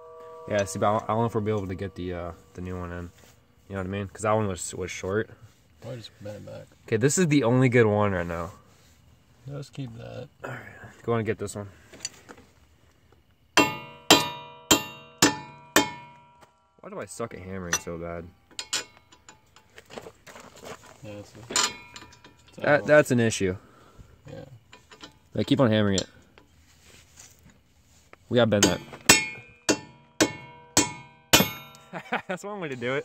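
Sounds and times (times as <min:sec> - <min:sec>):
hammer clanging on steel stud: 0:13.6 - 0:16.4, 0:28.6 - 0:31.9.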